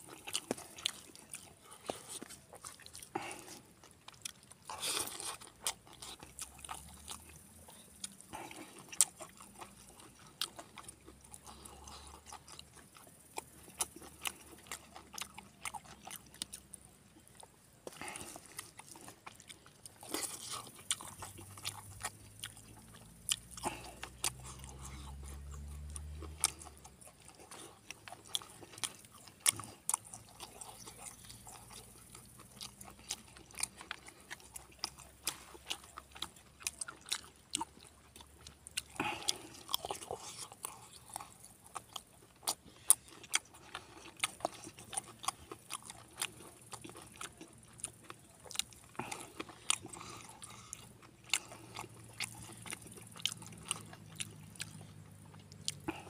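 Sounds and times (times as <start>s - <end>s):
man chewing food: 0.0s - 56.0s.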